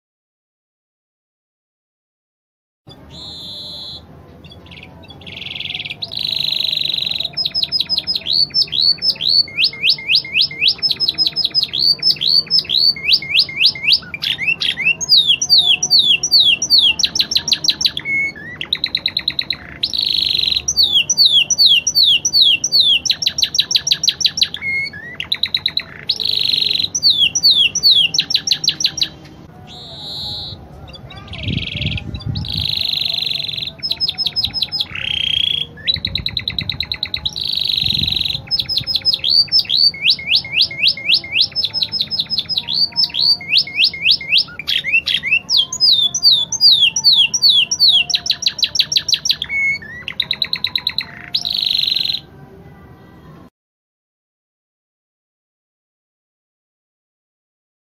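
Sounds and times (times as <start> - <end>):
canary singing: 2.9 - 53.4.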